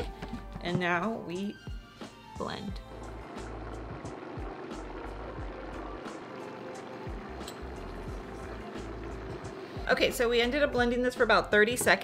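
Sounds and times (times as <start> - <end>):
background music: 0.0 - 12.0
blender running at high speed: 2.8 - 10.1.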